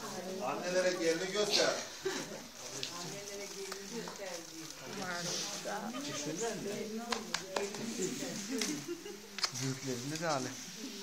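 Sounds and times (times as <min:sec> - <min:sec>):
indistinct people talking: 0:00.0 - 0:11.0.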